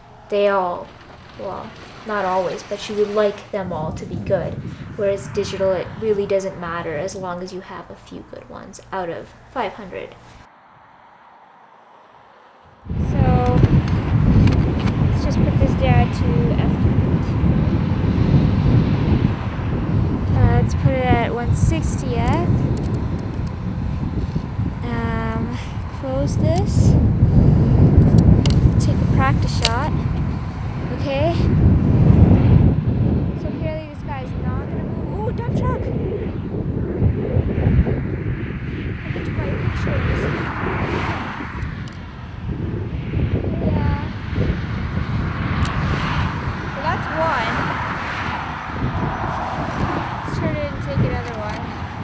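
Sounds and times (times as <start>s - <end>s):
woman's voice: 0.0s - 10.3s, 13.0s - 13.8s, 15.1s - 17.3s, 20.3s - 22.6s, 24.8s - 27.0s, 28.7s - 30.0s, 30.8s - 31.6s, 33.4s - 36.0s, 39.0s - 41.4s, 43.6s - 44.2s, 46.8s - 47.8s, 50.2s - 51.8s
dump truck passing: 0.0s - 36.8s, 43.6s - 52.0s
wind buffeting microphone: 0.0s - 52.0s.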